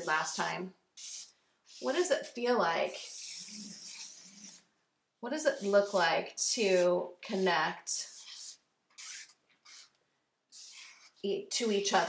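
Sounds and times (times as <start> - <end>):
marker scratching on paper: 0.0 - 4.7, 5.3 - 12.0.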